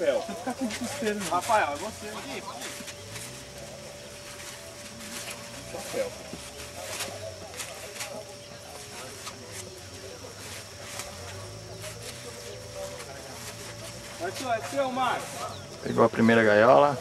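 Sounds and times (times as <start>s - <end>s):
people talking in background: 0.0s - 17.0s.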